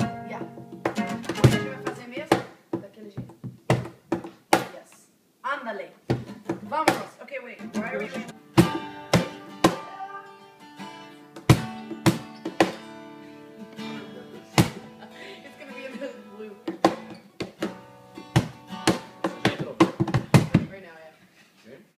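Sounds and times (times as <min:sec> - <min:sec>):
acoustic guitar strumming: 0:00.0 - 0:02.3, 0:06.2 - 0:20.3
cajon hits: 0:00.0 - 0:04.8, 0:06.1 - 0:10.0, 0:11.3 - 0:12.9, 0:14.5 - 0:15.0, 0:16.6 - 0:20.8.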